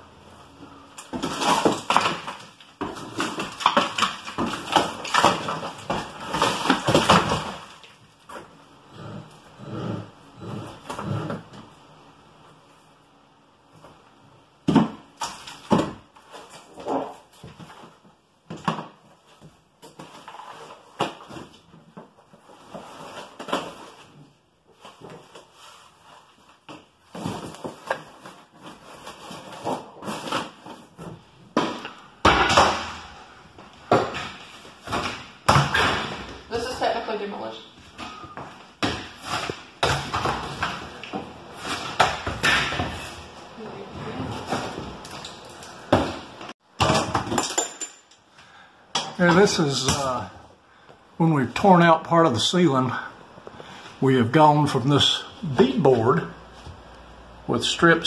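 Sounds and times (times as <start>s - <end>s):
plaster cracking and falling: 1.0s - 8.0s, 31.5s - 33.2s, 45.0s - 48.1s.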